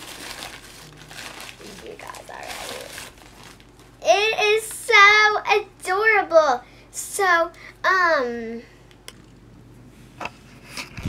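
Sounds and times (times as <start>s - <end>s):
wrapping crinkling and rustling: 0.0s - 4.8s.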